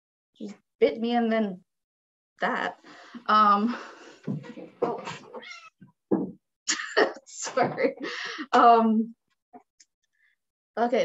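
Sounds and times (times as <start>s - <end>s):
cat meowing: 5.4s - 5.8s.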